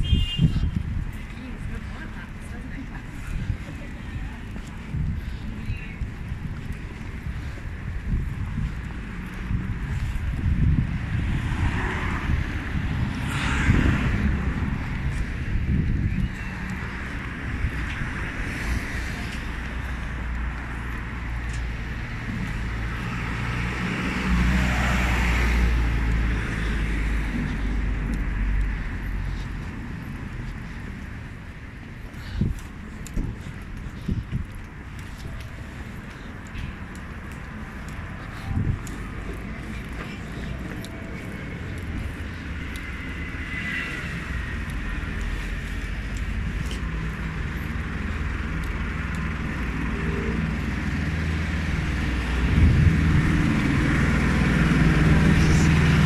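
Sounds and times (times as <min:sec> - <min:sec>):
vehicles passing: 0:00.0 - 0:56.0
wind noise on microphone: 0:00.0 - 0:56.0
low engine hum: 0:00.7 - 0:56.0.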